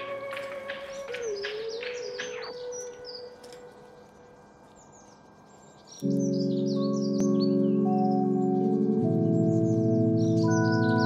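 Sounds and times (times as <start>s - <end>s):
small birds chirping: 0.0s - 11.0s
steady low tone: 0.0s - 11.0s.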